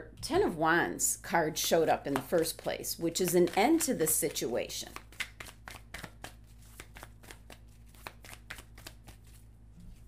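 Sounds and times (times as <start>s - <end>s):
cards being shuffled: 2.1s - 10.0s.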